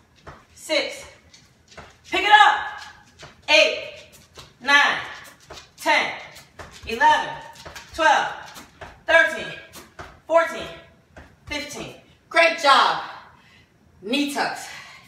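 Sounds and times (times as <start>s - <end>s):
woman counting: 0.5s - 1.2s, 2.0s - 13.3s, 14.0s - 14.8s.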